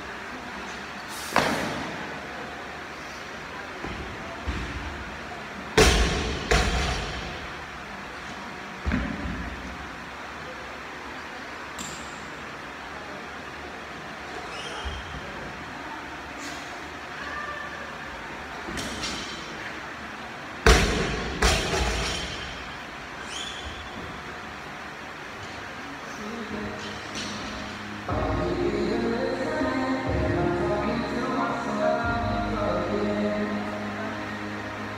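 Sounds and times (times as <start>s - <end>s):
steady background hum: 0.0s - 34.9s.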